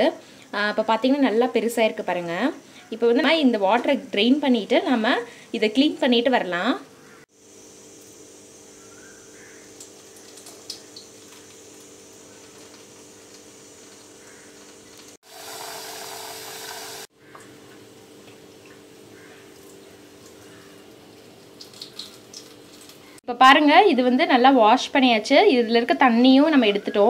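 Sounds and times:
tap water running into a pot: 9.7s - 17.5s, 19.6s - 23.1s.

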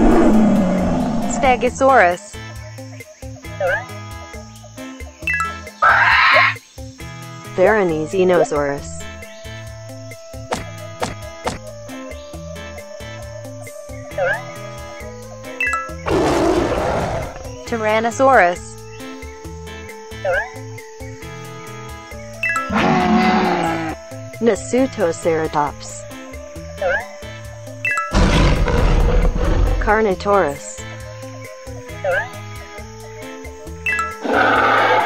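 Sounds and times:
dinosaur roar: 0.0s - 1.8s, 16.1s - 17.5s, 22.7s - 24.0s, 28.1s - 30.0s, 34.2s - 35.0s
children's background music: 0.0s - 35.0s.

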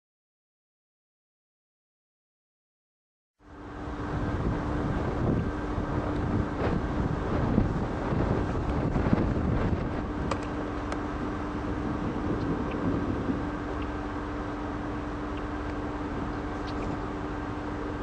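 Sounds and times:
low hum: 3.4s - 18.0s
wind buffeting microphone: 3.8s - 18.0s.

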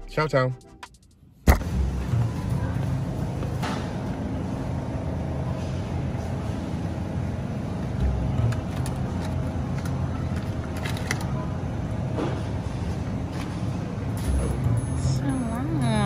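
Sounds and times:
refrigerator hum: 1.2s - 16.0s.

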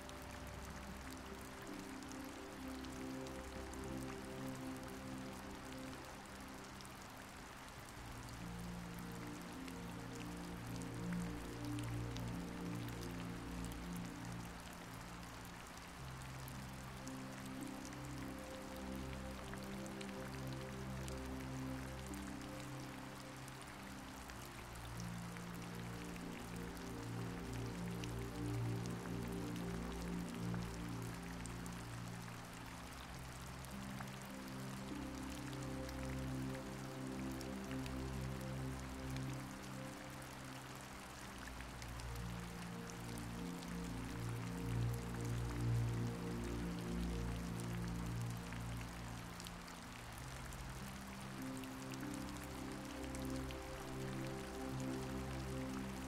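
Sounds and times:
rain with drops pattering: 0.0s - 56.0s
soft slow music with low chords: 0.0s - 56.0s.

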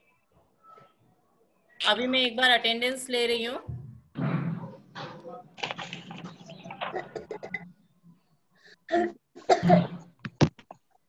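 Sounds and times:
person coughing: 8.9s - 10.1s.

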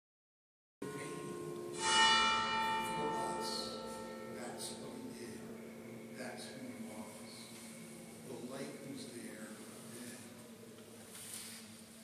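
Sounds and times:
bell ringing: 0.8s - 7.1s.

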